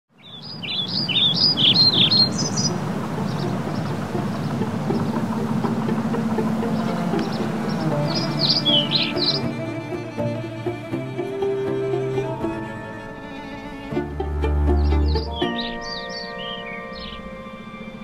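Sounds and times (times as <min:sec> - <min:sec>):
birds chirping: 0:00.1 - 0:18.0
outdoor background: 0:00.1 - 0:18.0
sustained string music: 0:00.4 - 0:18.0.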